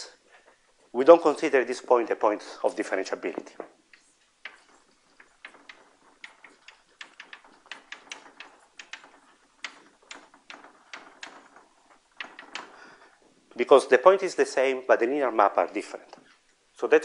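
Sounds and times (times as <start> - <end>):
chalk tapping on a blackboard: 3.9 - 11.6.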